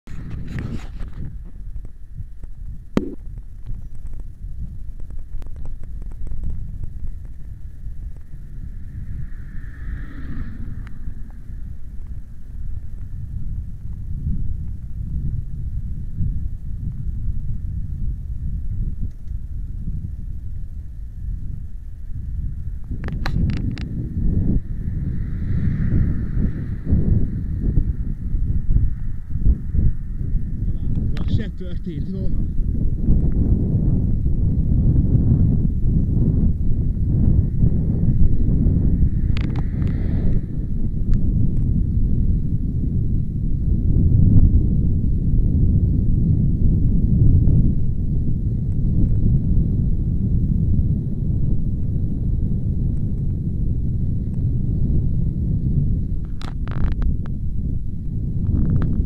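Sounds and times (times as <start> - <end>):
wind buffeting microphone: 0.1 - 59.0.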